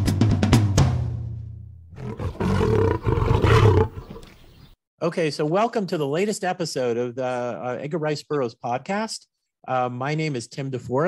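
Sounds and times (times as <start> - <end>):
lion roar: 1.9 - 4.4.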